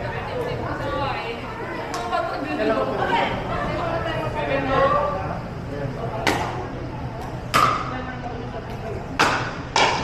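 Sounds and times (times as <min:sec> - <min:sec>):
faint murmur of voices: 0:00.0 - 0:10.0.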